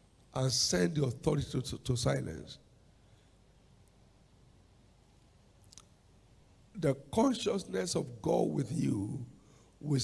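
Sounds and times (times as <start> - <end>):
faint low room hum: 0.0 - 10.0
man speaking into a microphone: 0.3 - 2.7, 6.7 - 10.0.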